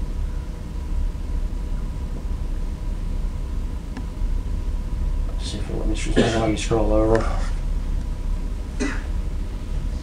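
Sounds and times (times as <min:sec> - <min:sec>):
low room hum: 0:00.0 - 0:10.0
person coughing: 0:06.0 - 0:06.6, 0:08.8 - 0:09.2.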